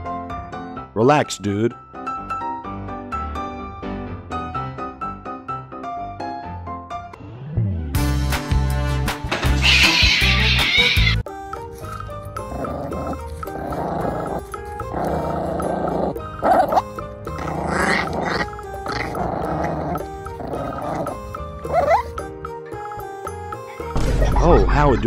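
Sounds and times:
background music: 0.0s - 25.0s
puppy whining: 9.6s - 11.2s, 11.8s - 22.9s
puppy growling: 11.8s - 22.3s.

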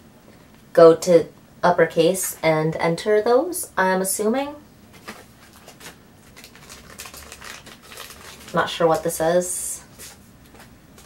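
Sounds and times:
packaging crinkling: 5.0s - 9.2s.

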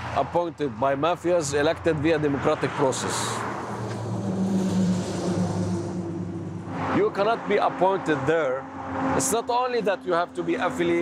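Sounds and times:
outdoor traffic noise: 0.0s - 11.0s
vehicle engine hum: 0.9s - 11.0s.

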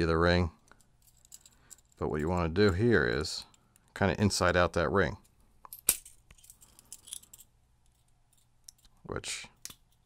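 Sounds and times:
small metal clicks and clinks: 0.7s - 2.8s, 5.6s - 9.0s.

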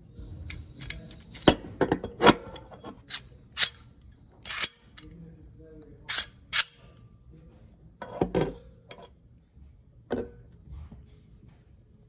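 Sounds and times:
metallic lever and ratchet clicks: 0.5s - 1.6s, 2.2s - 5.1s, 6.1s - 6.8s.

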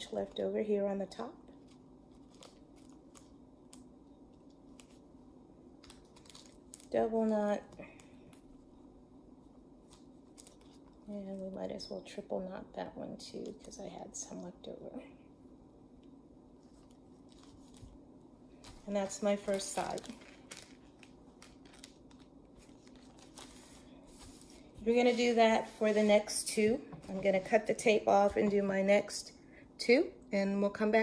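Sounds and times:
string and plastic sheet rustling: 16.6s - 28.5s.

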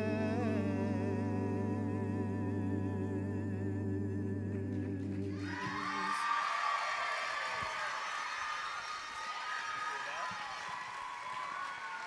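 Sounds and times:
men singing a cappella chord: 0.0s - 6.2s
audience cheering and applause: 5.3s - 12.0s.

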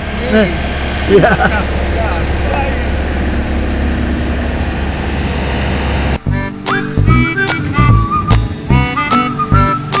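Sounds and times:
engine idling rumble: 0.0s - 10.0s.

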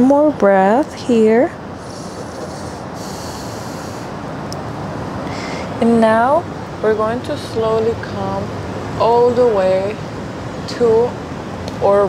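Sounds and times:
distant city traffic: 0.0s - 12.0s
wind: 0.0s - 12.0s
high hiss: 1.7s - 4.3s.

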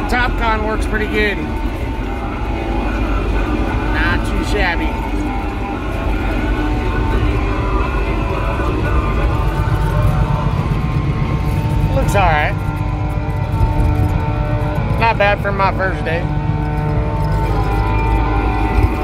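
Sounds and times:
diesel engine running under load: 0.0s - 19.0s
person speaking: 14.9s - 16.3s.

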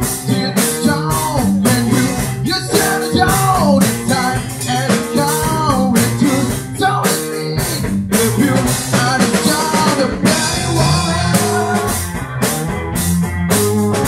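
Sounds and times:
man singing into microphone: 0.0s - 12.1s
bass guitar: 0.0s - 14.0s
drum kit beat: 0.0s - 14.0s
electric guitar: 0.0s - 14.0s.

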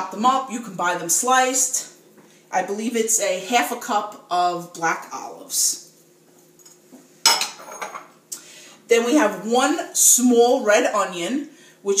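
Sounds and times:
glass dish clinking on stone: 7.3s - 8.1s.

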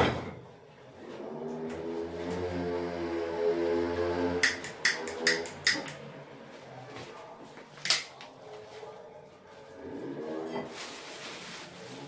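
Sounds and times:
paper wrapper crinkling: 10.7s - 12.0s.

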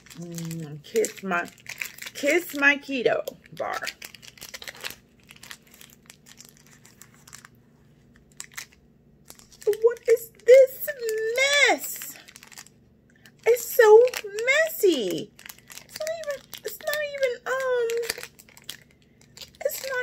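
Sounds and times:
snack wrapper crinkling and tearing: 0.0s - 20.0s.

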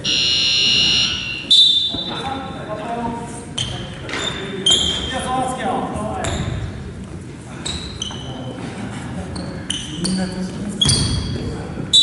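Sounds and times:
shoe squeaks: 0.0s - 2.5s, 3.5s - 5.4s, 7.6s - 8.6s, 9.3s - 12.0s.

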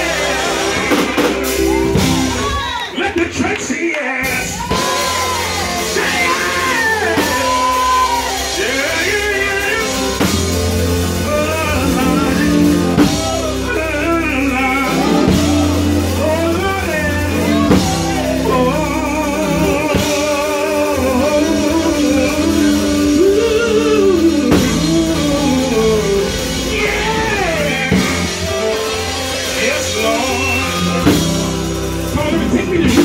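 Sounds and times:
bass line: 0.0s - 3.4s, 4.2s - 33.0s
backing singers: 0.0s - 33.0s
drums: 0.0s - 33.0s
man singing gospel lead: 0.0s - 33.0s.

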